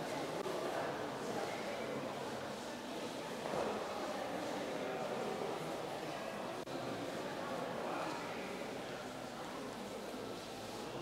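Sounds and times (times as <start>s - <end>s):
murmur of voices in hall: 0.0s - 11.0s.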